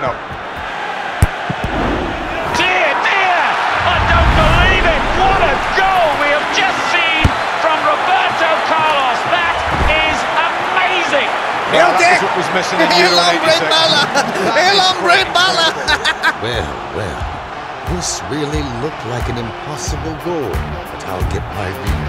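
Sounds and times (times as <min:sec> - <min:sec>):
excited crowd voices: 0:00.0 - 0:22.0
football kicked hard thud: 0:07.2 - 0:07.4.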